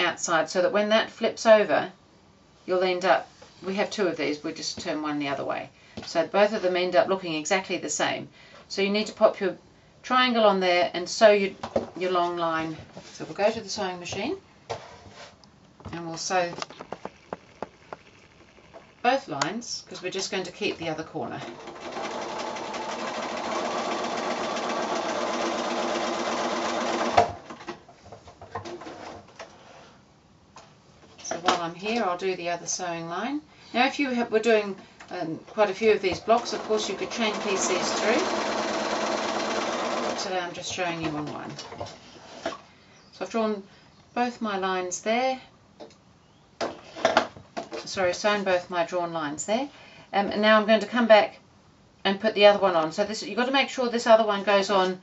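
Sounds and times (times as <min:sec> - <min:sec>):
sewing machine stitching: 0:21.4 - 0:27.6, 0:36.2 - 0:40.4.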